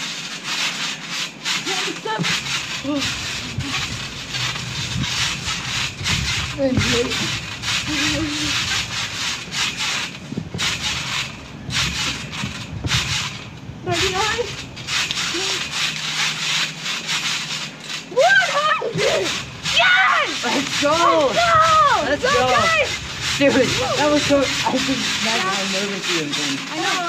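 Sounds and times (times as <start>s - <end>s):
trampoline rustling and knocking: 0.0s - 27.0s
children calling out: 18.1s - 23.0s.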